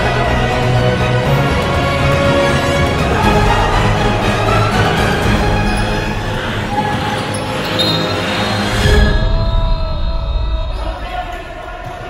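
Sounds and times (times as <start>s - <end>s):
voices in echoing hall: 0.0s - 12.0s.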